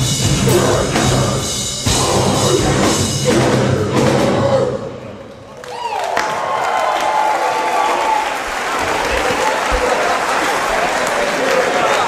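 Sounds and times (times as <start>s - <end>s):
crowd applauding and cheering: 5.4s - 12.0s
shouts from crowd: 5.6s - 12.0s.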